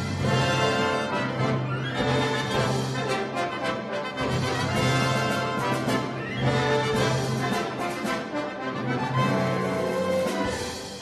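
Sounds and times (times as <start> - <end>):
chamber orchestra playing: 0.0 - 11.0.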